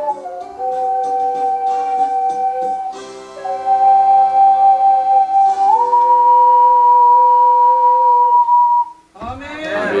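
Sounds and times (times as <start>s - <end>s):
ocarina duet holding a note: 0.0s - 10.0s
audience voices: 9.2s - 10.0s.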